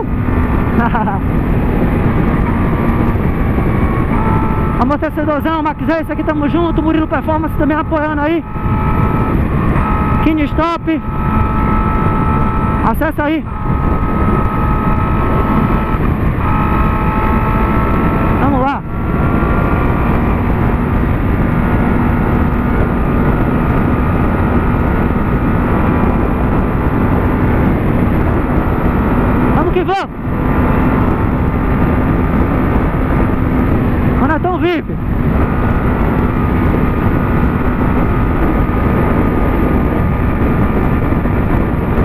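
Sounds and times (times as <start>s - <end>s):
motorcycle engine cruising: 0.0s - 42.0s
wind noise: 0.0s - 42.0s.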